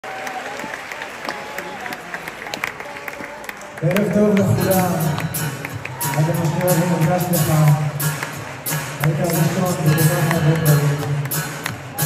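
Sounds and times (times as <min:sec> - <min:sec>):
audience applauding: 0:00.0 - 0:12.0
crowd voices: 0:00.0 - 0:12.0
man talking over a pa: 0:03.8 - 0:05.3, 0:09.0 - 0:11.2.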